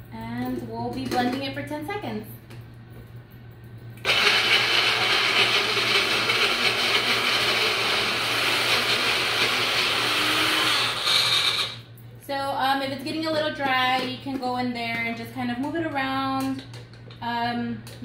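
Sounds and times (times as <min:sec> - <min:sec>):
blender motor running: 0:04.0 - 0:11.9.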